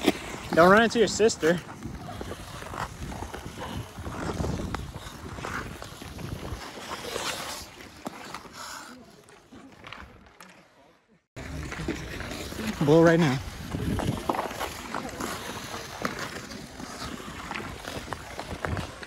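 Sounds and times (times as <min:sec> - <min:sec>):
ice skate blades scraping: 0:00.0 - 0:10.7, 0:11.4 - 0:19.0
wind rumble on microphone: 0:01.8 - 0:06.6, 0:13.4 - 0:14.5.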